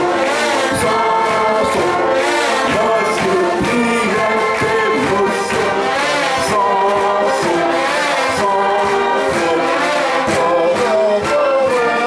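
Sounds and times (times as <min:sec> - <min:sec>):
voices singing: 0:00.0 - 0:12.0
wind band playing: 0:00.0 - 0:12.0.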